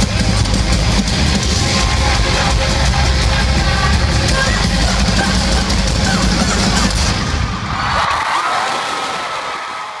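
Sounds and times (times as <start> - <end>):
live rock band: 0.0 - 8.1
crowd cheering: 0.1 - 10.0.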